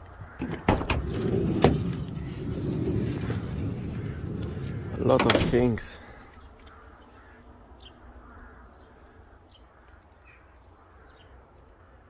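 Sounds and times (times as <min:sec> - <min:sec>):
low background rumble: 0:01.0 - 0:08.7.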